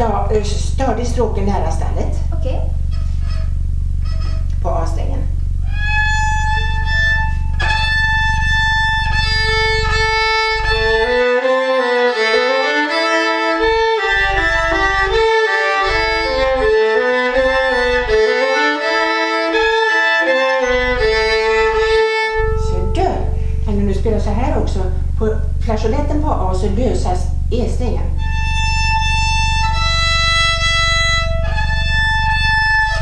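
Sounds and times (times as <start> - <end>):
violin harmonic high note: 2.6 - 25.2, 28.1 - 33.0
violin tune of lower notes: 2.8 - 24.2, 28.1 - 33.0.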